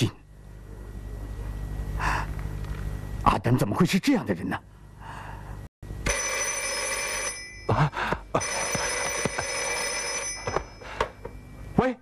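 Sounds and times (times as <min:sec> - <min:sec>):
desk telephone ringing: 0:06.0 - 0:11.5.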